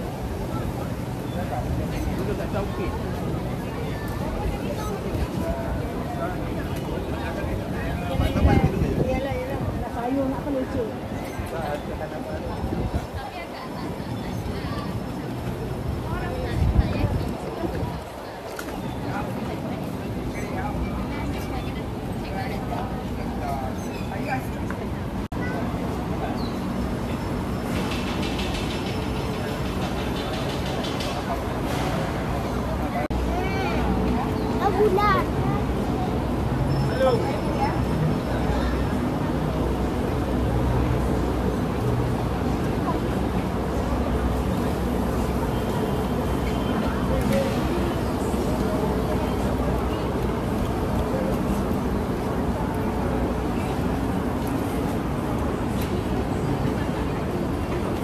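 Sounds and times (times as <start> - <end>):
faint murmur of voices: 0.0 - 58.0
low market rumble: 0.0 - 58.0.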